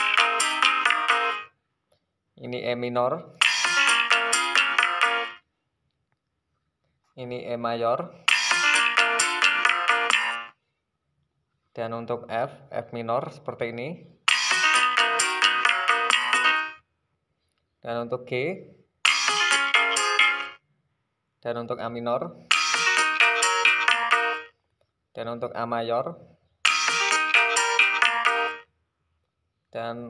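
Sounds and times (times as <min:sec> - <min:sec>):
synthesized keyboard notes: 0:00.0 - 0:01.5, 0:03.4 - 0:05.4, 0:08.3 - 0:10.5, 0:14.3 - 0:16.8, 0:19.1 - 0:20.6, 0:22.5 - 0:24.5, 0:26.7 - 0:28.7
quick synthesized notes: 0:08.3 - 0:10.4, 0:22.5 - 0:24.5, 0:26.7 - 0:28.6.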